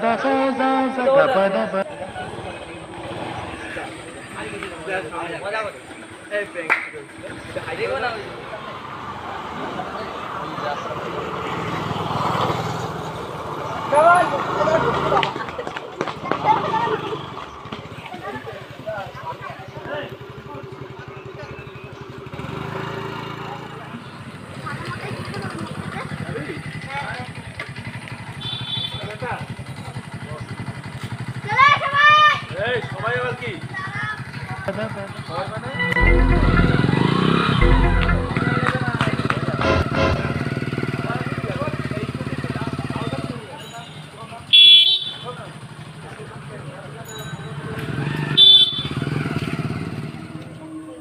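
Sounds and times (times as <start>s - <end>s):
voices talking: 0.0s - 12.3s, 13.0s - 27.9s, 29.1s - 48.2s
motorcycle engine idling: 17.2s - 35.6s
loud shout: 31.5s - 32.5s.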